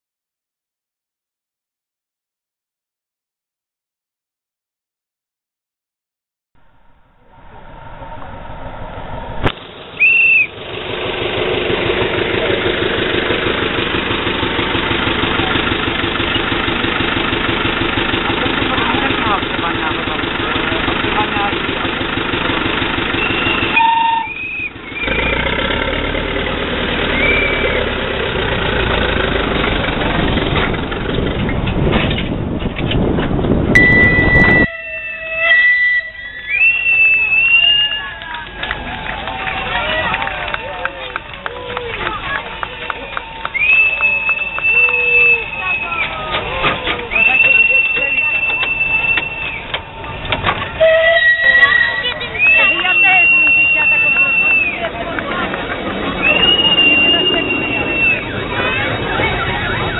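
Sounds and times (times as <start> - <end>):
diesel locomotive running: 6.6 - 59.9
locomotive whistle: 9.9 - 10.6, 22.6 - 25.8, 27.0 - 28.2, 33.7 - 59.9
wheel squeals: 9.9 - 10.6, 22.4 - 25.8, 27.0 - 28.1, 31.4 - 59.9
people's voices: 11.6 - 31.7, 36.4 - 59.9.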